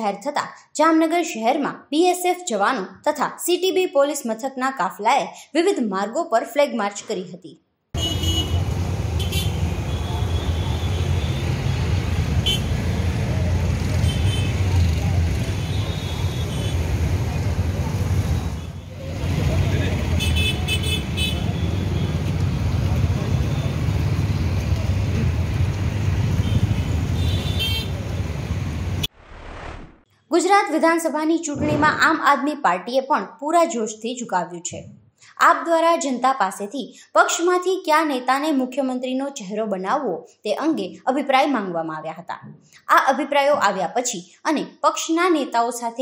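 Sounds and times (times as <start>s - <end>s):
vehicle horn toots: 8.0s - 11.6s, 12.4s - 12.8s, 14.0s - 14.6s, 20.2s - 22.2s, 26.4s - 28.0s
vehicle engines rumbling: 8.0s - 29.1s.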